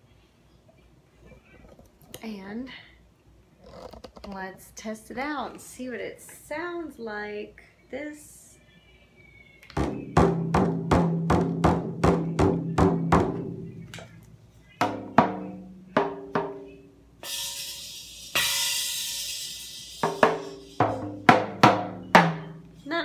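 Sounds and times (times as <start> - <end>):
toy drum hits: 14.8 - 16.6, 17.2 - 22.6
toy cymbal ringing: 17.2 - 21.0.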